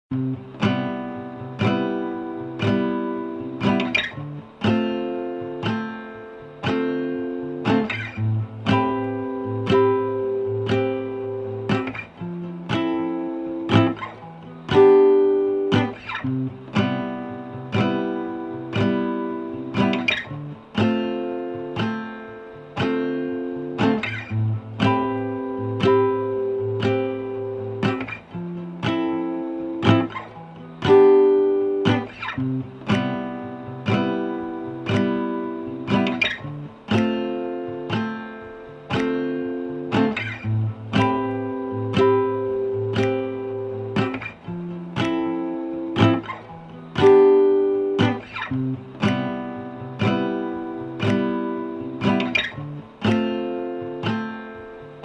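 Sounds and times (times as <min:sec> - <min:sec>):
acoustic guitar strumming: 0:00.1 - 0:55.0.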